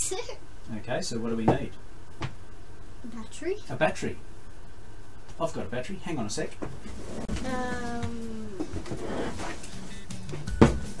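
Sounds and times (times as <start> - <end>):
background music with a beat: 9.6 - 11.0.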